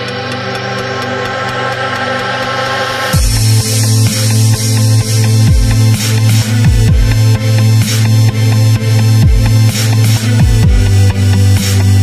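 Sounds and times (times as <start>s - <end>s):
hi-hat ticking: 0.0s - 12.0s
layered synth chords: 0.0s - 12.0s.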